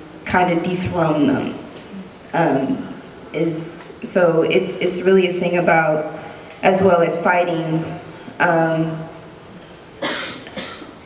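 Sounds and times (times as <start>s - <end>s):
woman coughing into microphone: 10.0s - 11.0s.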